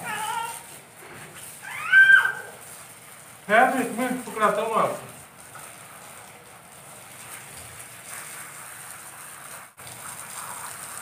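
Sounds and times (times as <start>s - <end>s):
toddler squealing: 0.0s - 0.7s, 1.6s - 2.6s.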